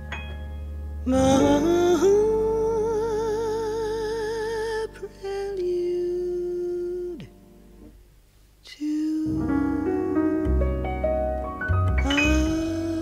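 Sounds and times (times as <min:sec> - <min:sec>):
soft musical accompaniment: 0:00.0 - 0:13.0
woman singing jazz with vibrato: 0:01.1 - 0:07.3, 0:08.7 - 0:10.6, 0:12.0 - 0:13.0.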